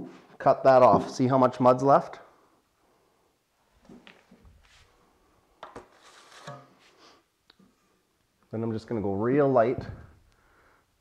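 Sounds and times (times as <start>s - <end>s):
trowel scraping joint compound: 5.6s - 6.9s.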